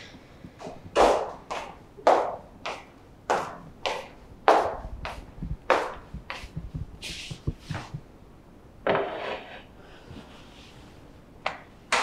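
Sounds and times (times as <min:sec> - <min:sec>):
hard-soled footsteps on hard floor: 0:00.5 - 0:08.1.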